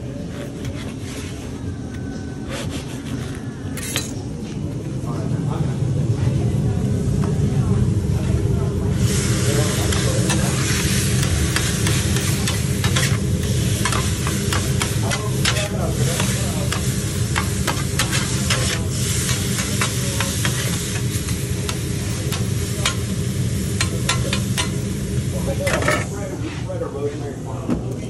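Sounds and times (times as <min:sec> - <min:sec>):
steady low hum: 0:00.0 - 0:28.0
chicken sizzling on a griddle: 0:08.9 - 0:25.9
metal spatula striking griddle: 0:11.2 - 0:23.1, 0:23.7 - 0:24.9.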